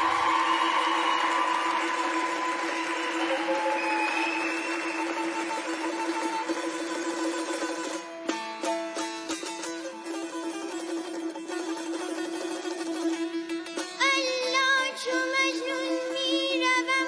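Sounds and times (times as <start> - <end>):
audience applauding and cheering: 0.0 - 7.3.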